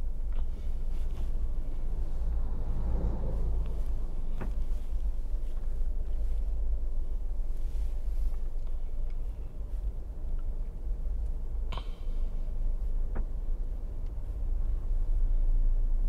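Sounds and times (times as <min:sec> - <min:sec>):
wind rumble on microphone: 0:00.8 - 0:08.5.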